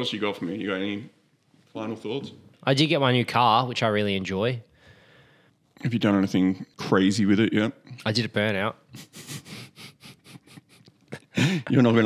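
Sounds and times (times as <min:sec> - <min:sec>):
breathy laughter: 0:09.0 - 0:11.8.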